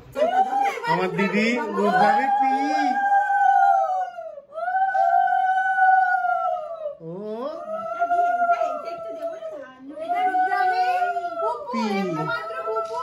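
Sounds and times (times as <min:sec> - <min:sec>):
women ululating: 0:00.2 - 0:13.0.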